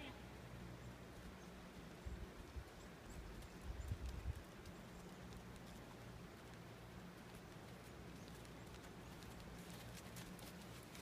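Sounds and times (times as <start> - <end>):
horse hoofbeats on gravel: 1.2 - 11.0.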